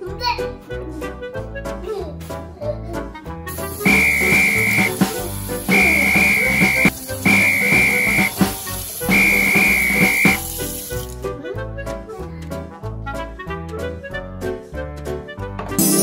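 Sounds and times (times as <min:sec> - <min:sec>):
cheerful background music: 0:00.0 - 0:16.0
running kitchen tap: 0:03.5 - 0:11.3
long whistle tones: 0:03.8 - 0:05.0, 0:05.7 - 0:08.4, 0:09.1 - 0:10.4.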